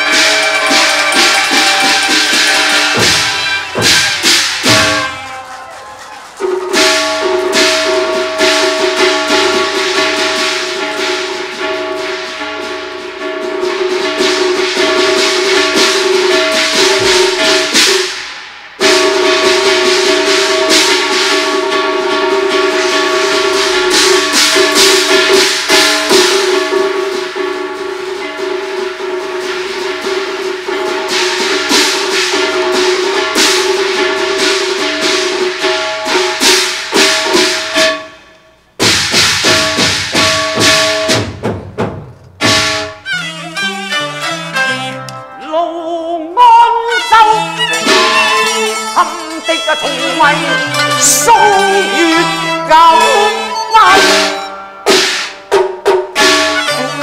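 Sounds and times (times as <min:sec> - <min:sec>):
sharp percussion strokes: 0:00.0 - 0:45.6, 0:46.4 - 0:57.0
held melodic line: 0:42.9 - 0:54.8.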